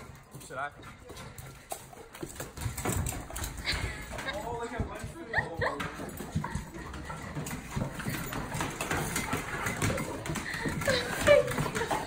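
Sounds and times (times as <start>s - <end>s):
dogs scuffling: 0.0s - 12.0s.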